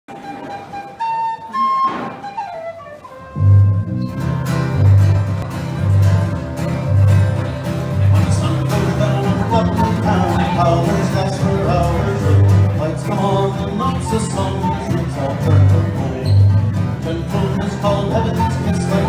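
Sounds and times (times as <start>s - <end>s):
acoustic guitar: 0.1s - 19.0s
lone melody line: 0.2s - 19.0s
bass guitar: 3.2s - 19.0s.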